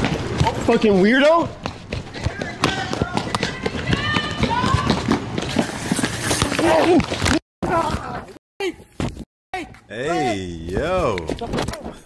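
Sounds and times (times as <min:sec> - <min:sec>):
quick footsteps on sidewalk: 0:00.0 - 0:07.4.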